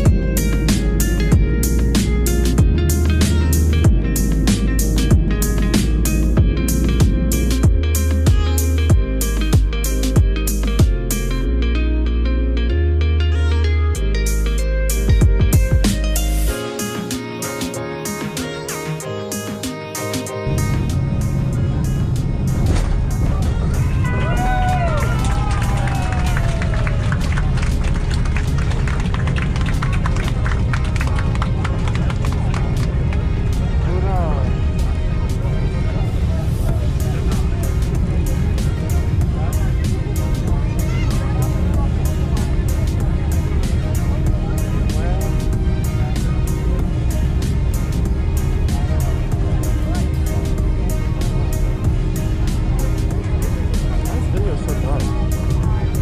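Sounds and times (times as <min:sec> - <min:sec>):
airliner engines and wheels rumbling: 0:00.0 - 0:11.3, 0:19.4 - 0:56.0.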